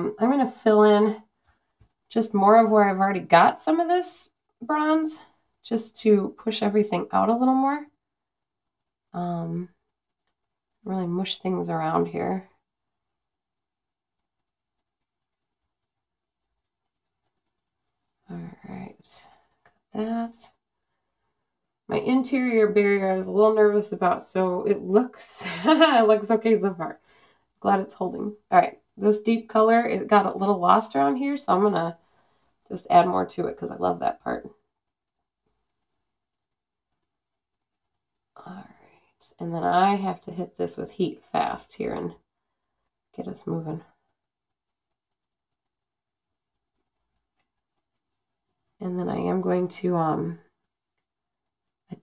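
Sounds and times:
light clicks and crackles: 0.0 - 12.6, 13.5 - 52.0.

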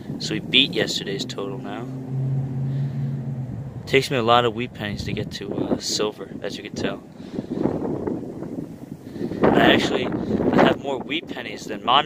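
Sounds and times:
low steady hum: 0.0 - 5.9.

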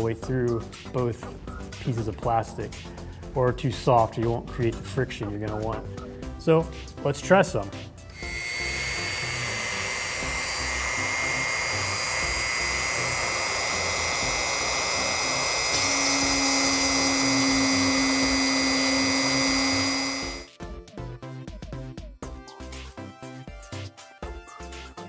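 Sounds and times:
rotary tool high whine: 8.0 - 20.5.

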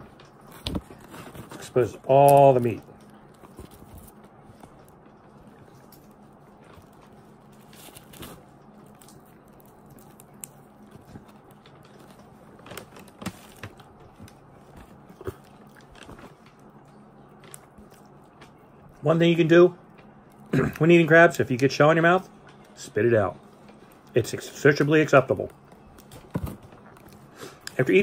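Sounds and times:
faint steady hum: 0.0 - 28.0
crab shell cracking by hand: 8.8 - 13.7
chewing: 14.7 - 19.0.

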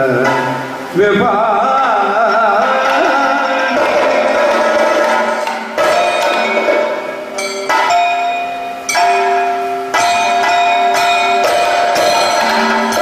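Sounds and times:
ringing bell-metal percussion: 0.0 - 1.0, 1.7 - 13.0.

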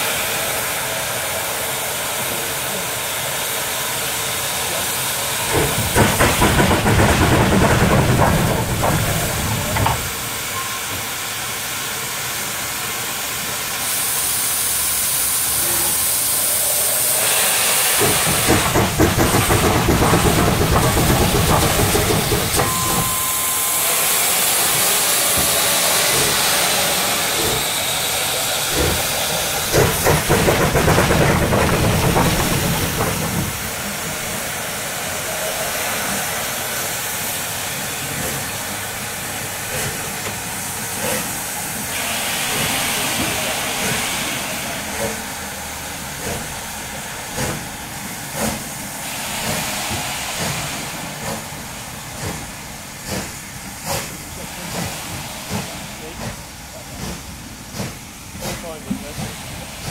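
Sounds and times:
steam hissing: 0.0 - 59.9
steam locomotive chuffing: 0.0 - 59.9.

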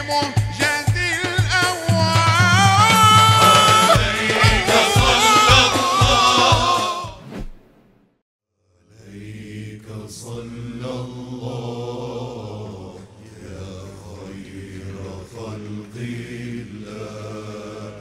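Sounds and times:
men chanting a devotional hymn: 0.0 - 7.2, 8.9 - 18.0.

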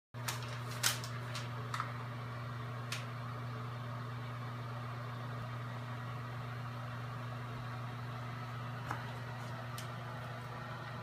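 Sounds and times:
low machinery hum: 0.2 - 11.0.

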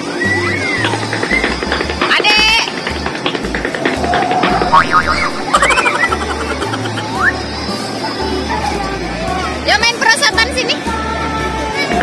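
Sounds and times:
background music with bass line: 3.0 - 7.4.

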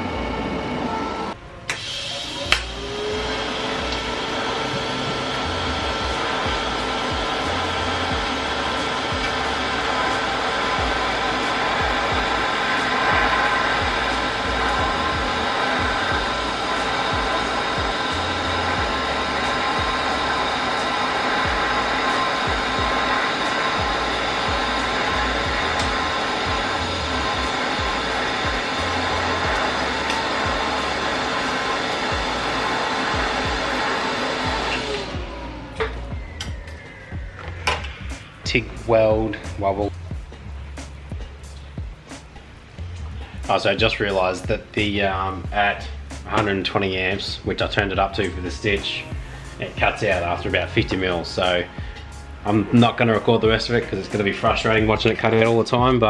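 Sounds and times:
welding arc hissing and buzzing: 1.7 - 35.2.

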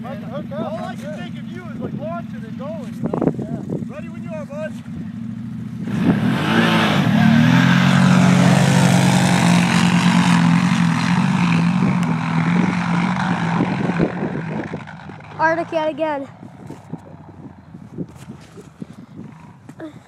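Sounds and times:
atv engines accelerating hard: 0.0 - 20.0.

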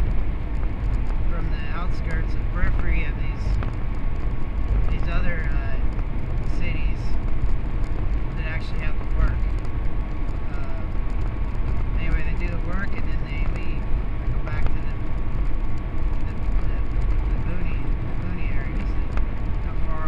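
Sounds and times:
road and engine noise in cabin: 0.0 - 20.0
thin steady whine: 0.0 - 20.0.

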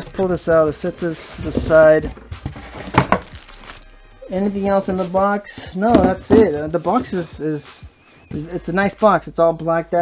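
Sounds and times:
cardboard knocks: 1.5 - 3.3, 5.9 - 6.6.

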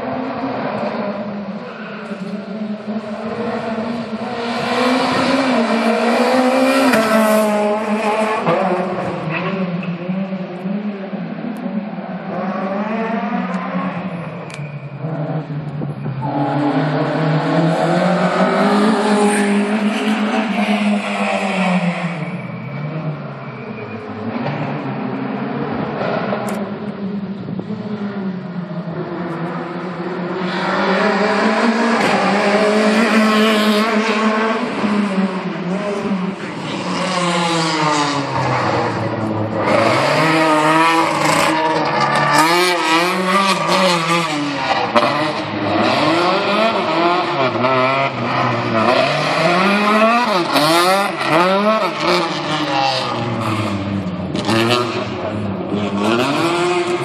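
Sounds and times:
car engine revving: 0.3 - 57.0.

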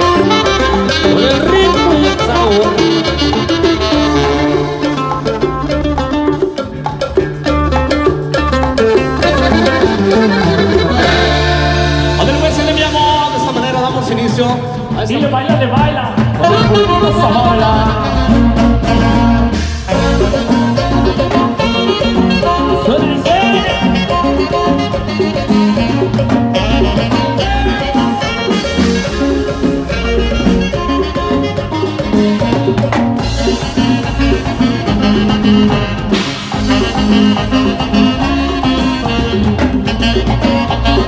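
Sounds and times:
live band playing latin dance music: 0.0 - 41.0.

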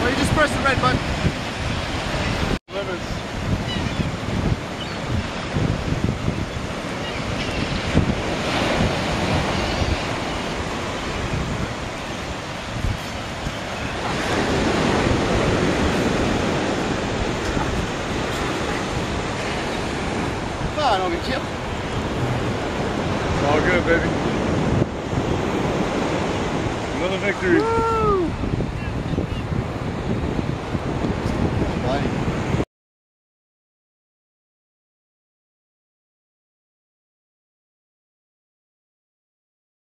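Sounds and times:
surf rushing: 0.0 - 32.6
wind buffeting microphone: 0.0 - 32.6.

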